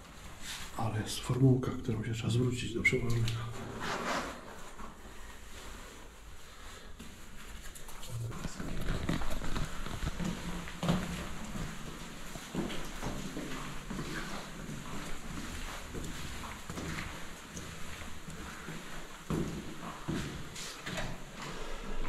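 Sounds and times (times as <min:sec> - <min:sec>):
footsteps on hard stairs: 0:08.0 - 0:22.0.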